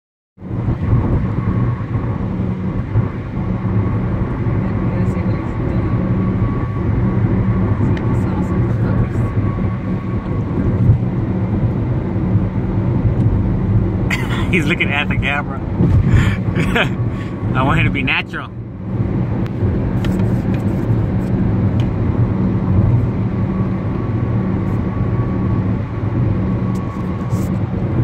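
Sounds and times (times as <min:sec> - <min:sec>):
car engine and road noise: 0:00.4 - 0:28.0.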